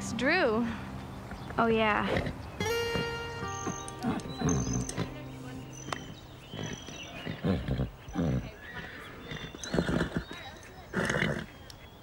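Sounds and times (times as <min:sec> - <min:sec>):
background music: 0:02.6 - 0:06.8.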